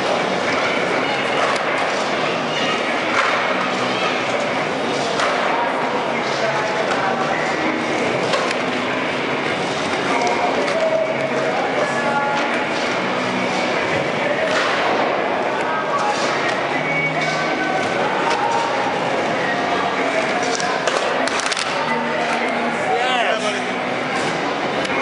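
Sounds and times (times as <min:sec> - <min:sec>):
chattering voices in echoing hall: 0:00.0 - 0:25.0.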